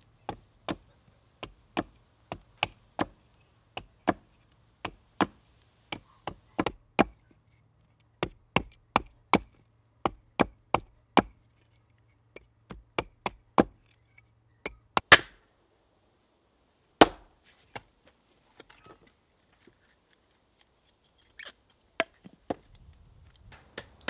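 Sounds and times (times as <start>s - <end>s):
axe chopping wood: 0.3s - 3.2s, 3.8s - 7.2s, 8.2s - 11.4s, 12.4s - 13.9s, 14.6s - 15.4s, 17.0s - 17.9s.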